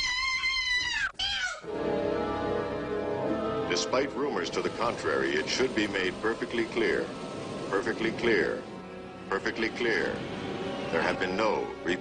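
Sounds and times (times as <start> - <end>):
steady low music: 1.6 - 12.0.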